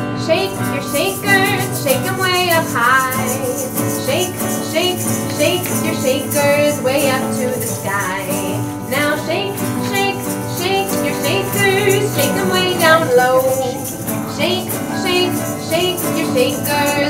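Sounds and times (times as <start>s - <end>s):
acoustic guitar strumming: 0.0s - 17.0s
woman singing: 0.0s - 17.0s.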